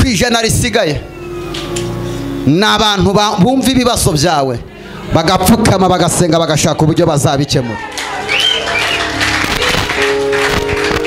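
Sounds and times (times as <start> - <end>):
music with sustained notes: 0.1 - 11.0
congregation clapping: 7.7 - 11.0.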